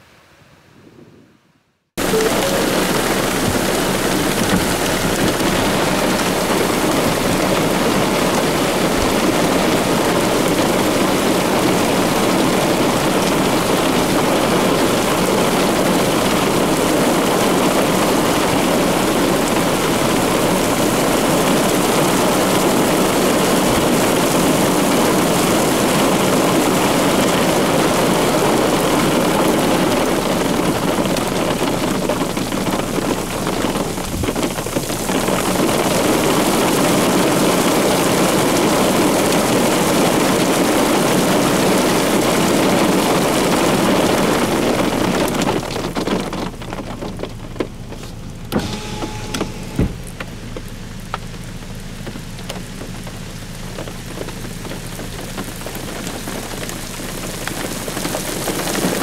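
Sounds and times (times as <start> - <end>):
rain: 2.0 - 59.0.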